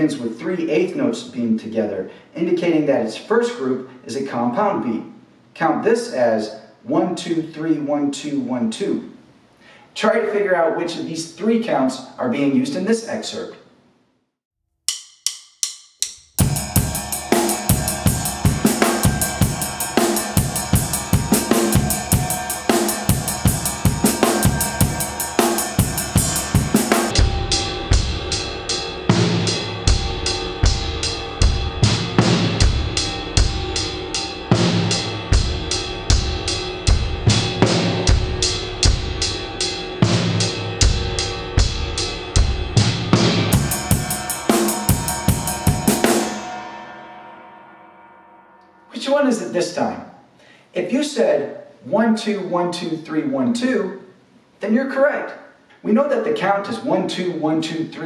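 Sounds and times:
cymbal ringing: 0:14.9 - 0:42.3, 0:43.3 - 0:49.1
drum kit playing a groove: 0:14.9 - 0:47.2.

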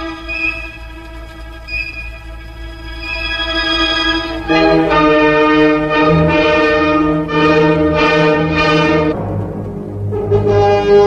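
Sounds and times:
orchestral music soft held note: 0:00.0 - 0:11.0.

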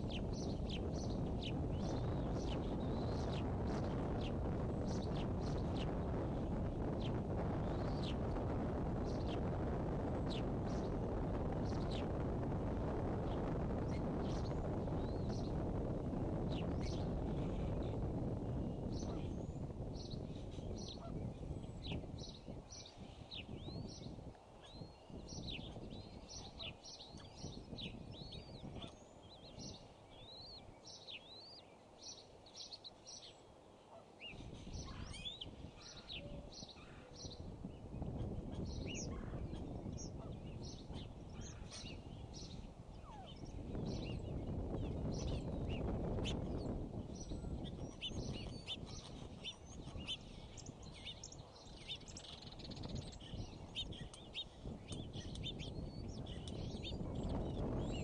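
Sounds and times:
eaglets peeping: 0:00.0 - 0:33.4, 0:34.0 - 0:58.0.

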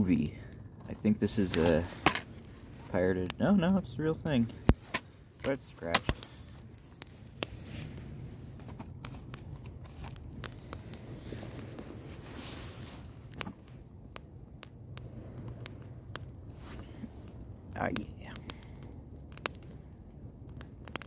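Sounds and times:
campfire crackling and popping: 0:00.0 - 0:21.0
low rumble of flame: 0:00.0 - 0:21.0.

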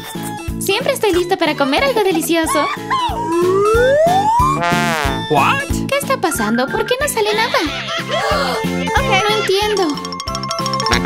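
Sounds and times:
background music with beat: 0:02.9 - 0:05.9
rising comic whistle: 0:03.2 - 0:05.3
short buzzy tone: 0:04.5 - 0:05.4.

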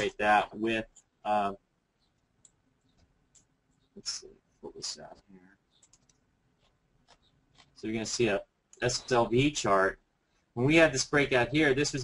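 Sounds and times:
computer mouse clicks: 0:02.1 - 0:03.9, 0:05.7 - 0:07.8.

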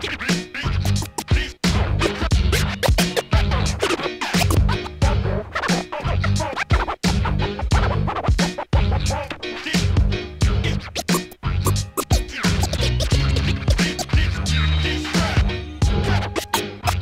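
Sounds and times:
boom-bap hip hop beat: 0:00.0 - 0:17.0
vinyl record scratching: 0:00.0 - 0:17.0
heavy bass line: 0:00.6 - 0:03.8, 0:04.5 - 0:06.5, 0:09.8 - 0:17.0.

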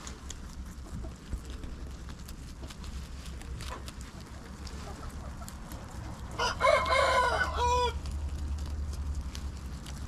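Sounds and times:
steady low hum: 0:00.0 - 0:06.4
rooster crowing: 0:06.3 - 0:08.2.

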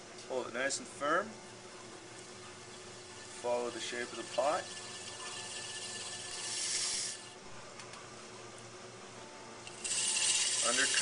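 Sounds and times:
blade scraping clay on wheel: 0:03.1 - 0:07.4, 0:09.7 - 0:11.0.

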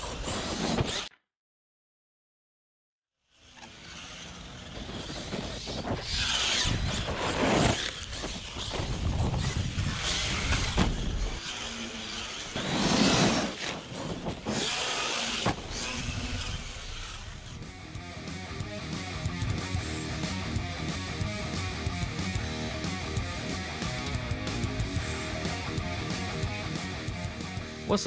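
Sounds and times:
toy truck motor and tyres: 0:00.0 - 0:01.2, 0:03.2 - 0:27.5
wind on microphone: 0:08.3 - 0:11.4.

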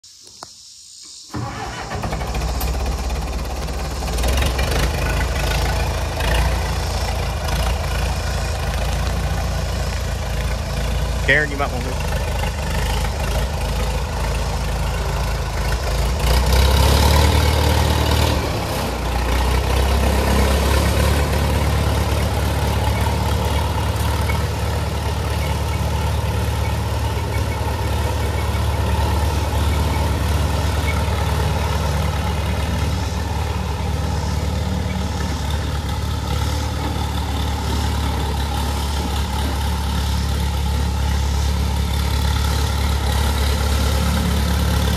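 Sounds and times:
tractor engine running: 0:00.1 - 0:44.9.

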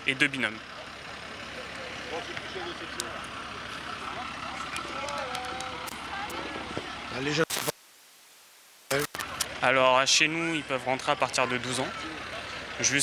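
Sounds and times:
distant people talking: 0:00.0 - 0:07.5, 0:08.9 - 0:13.0
steady background noise: 0:00.0 - 0:13.0.

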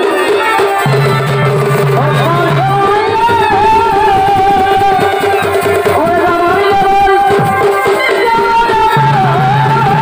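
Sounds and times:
steady drumming: 0:00.0 - 0:10.0
wavering melody over loudspeakers: 0:00.0 - 0:10.0.

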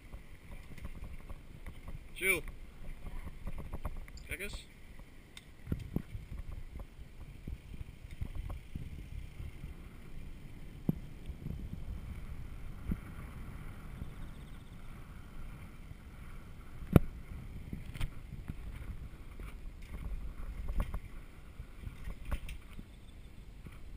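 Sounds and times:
bicycle tyres on tarmac: 0:00.0 - 0:23.9
wind rumble on microphone: 0:00.0 - 0:23.9.

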